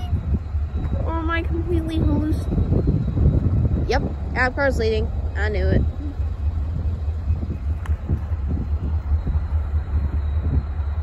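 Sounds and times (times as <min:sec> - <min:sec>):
distant train approaching: 0:00.0 - 0:11.0
wind buffeting microphone: 0:00.0 - 0:11.0.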